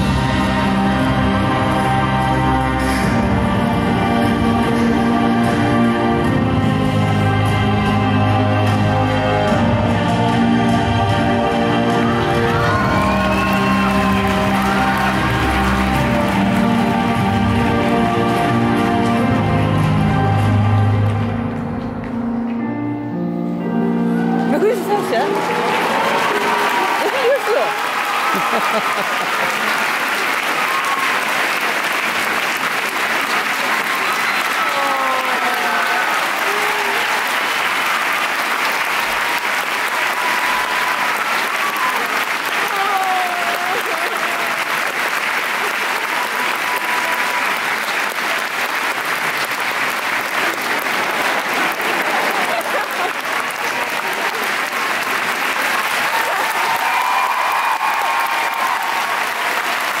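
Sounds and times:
large audience applauding: 0:00.0 - 0:03.2, 0:10.2 - 0:21.8, 0:24.2 - 1:00.0.

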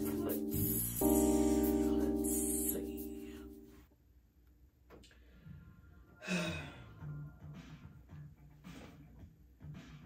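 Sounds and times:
woman sighing: 0:06.2 - 0:06.9.

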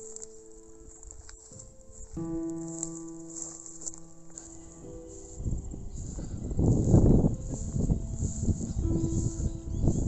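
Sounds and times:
dry grass rustling: 0:00.0 - 0:10.0
faint background music: 0:00.0 - 0:10.0
wind buffeting microphone: 0:03.8 - 0:10.0.

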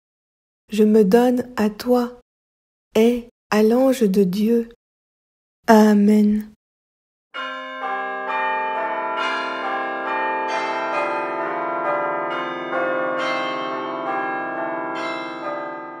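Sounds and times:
bells ringing: 0:07.4 - 0:16.0.

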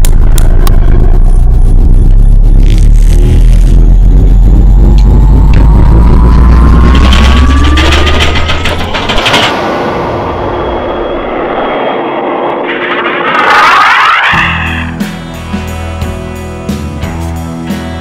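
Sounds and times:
crackling burst: 0:00.0 - 0:15.0
deep engine rumble with rising whine: 0:00.0 - 0:16.4.

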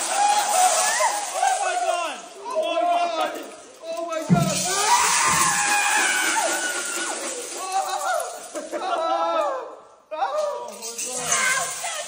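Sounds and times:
people shouting and screaming: 0:00.0 - 0:12.0.

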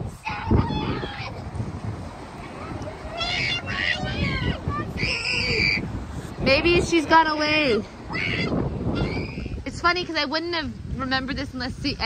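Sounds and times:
boat engine rumble: 0:00.0 - 0:12.0
wind on microphone: 0:00.0 - 0:12.0.

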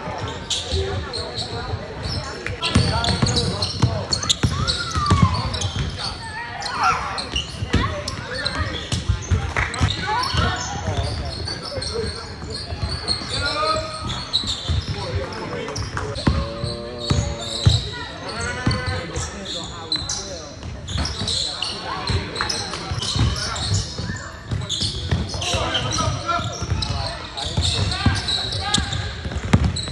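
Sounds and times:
voices: 0:00.0 - 0:29.8
basketball bouncing on hardwood: 0:29.3 - 0:29.9.

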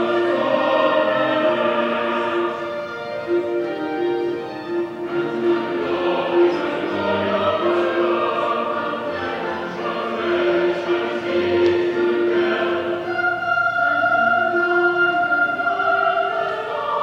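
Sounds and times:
congregation singing a hymn: 0:00.0 - 0:17.0
held accompanying chords: 0:00.0 - 0:17.0.

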